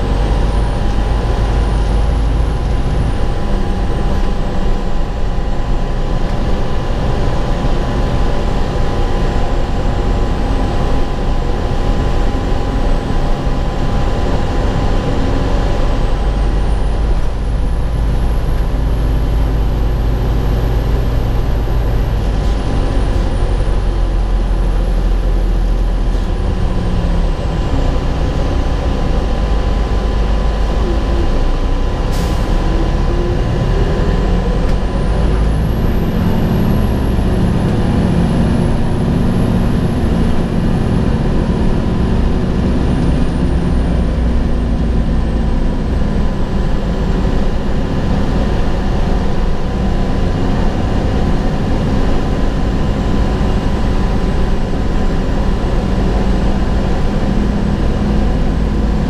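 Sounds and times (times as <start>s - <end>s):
bus diesel engine rumble: 0.0s - 59.0s
high engine whine: 0.0s - 59.0s.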